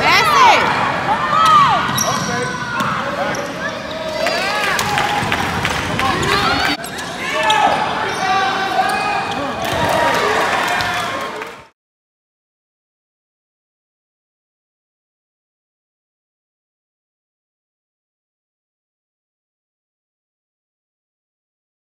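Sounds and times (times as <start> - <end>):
voices echoing in hall: 0.0 - 11.6
sneakers squeaking on hardwood: 1.8 - 4.1.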